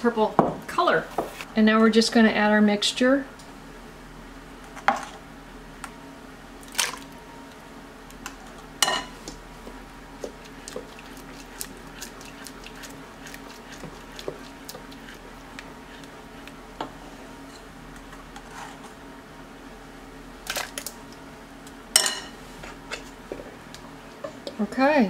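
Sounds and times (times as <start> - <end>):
spoon stirring mash in pot: 9.1 - 16.9.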